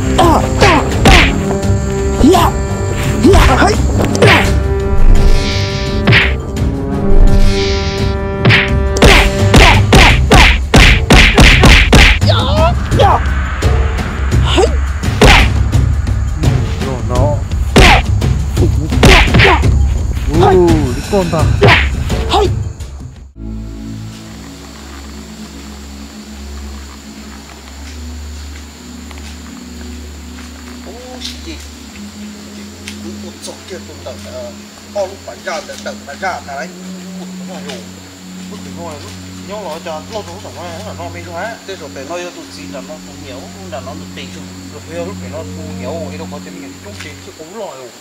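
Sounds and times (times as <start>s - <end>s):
swishing hits: 4.2s - 6.4s.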